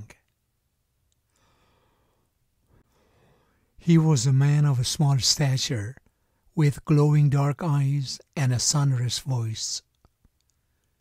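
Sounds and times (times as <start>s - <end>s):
faint breath: 1.3s - 3.8s.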